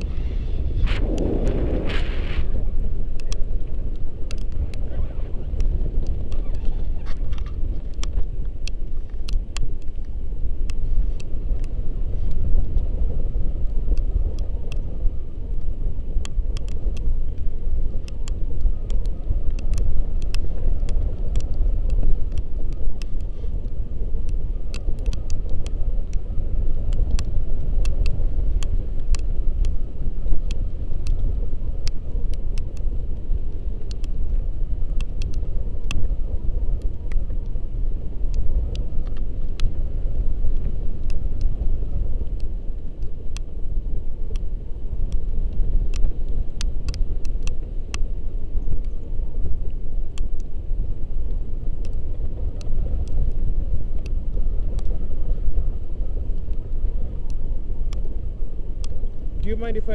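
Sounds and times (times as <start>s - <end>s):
faint clicks: 0.0s - 0.2s, 0.9s - 13.0s, 13.6s - 59.9s
wind rushing over microphone: 0.0s - 59.9s.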